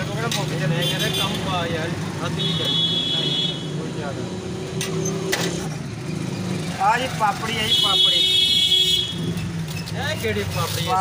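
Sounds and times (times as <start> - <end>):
passing traffic rumble: 0.0 - 11.0.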